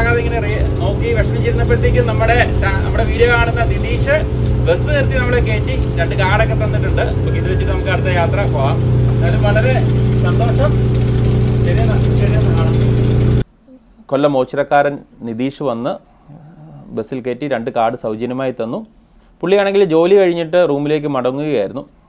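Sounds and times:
bus engine idling: 0.0 - 13.4.

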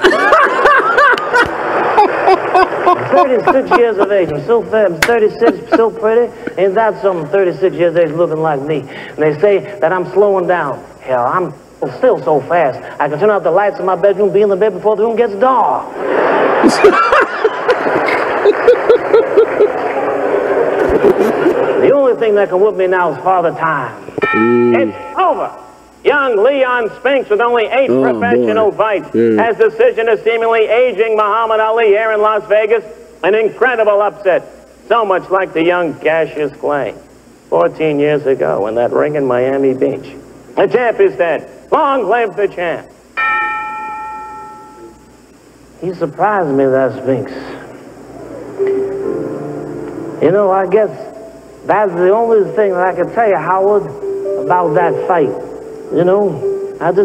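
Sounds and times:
person laughing quickly: 0.0 - 4.1, 16.5 - 19.9
audience laughing: 0.0 - 4.4, 15.9 - 21.8
metal bell ringing: 24.2 - 25.7, 43.2 - 45.1.

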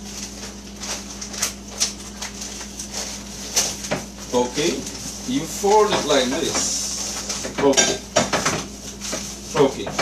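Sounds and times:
paper crinkling and rustling: 0.0 - 7.6, 8.6 - 10.0.

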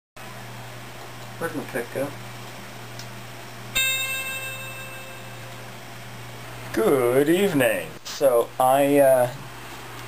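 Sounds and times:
steady low hum: 0.2 - 10.0
bell-like ringing note: 3.8 - 5.7.

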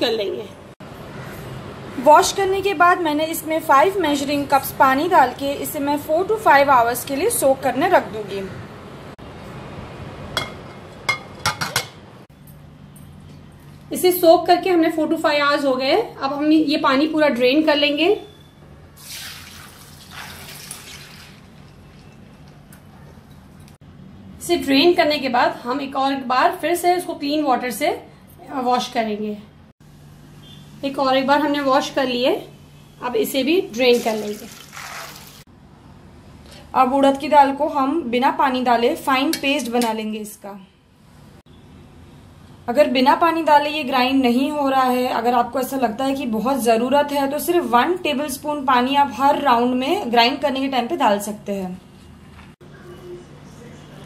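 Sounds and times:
dishes clinking: 10.4 - 12.0
water pouring into strainer: 19.0 - 22.2, 33.9 - 35.4.

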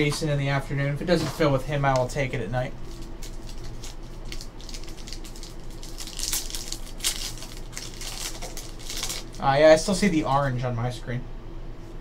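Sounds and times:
foil wrapper crinkling and tearing: 2.8 - 10.3.

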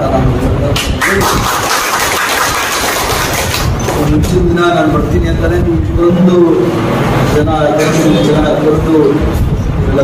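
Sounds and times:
audience clapping: 0.8 - 4.1.

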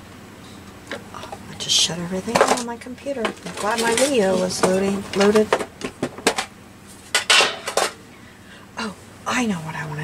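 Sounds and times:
clatter of small hard objects: 2.3 - 5.6.

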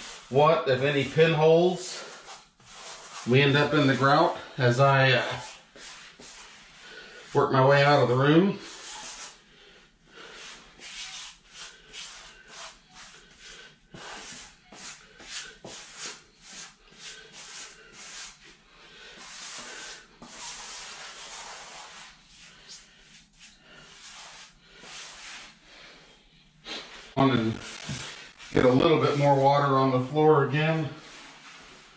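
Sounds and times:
grout float scraping tiles: 0.0 - 9.4, 19.1 - 25.6, 26.9 - 29.8.

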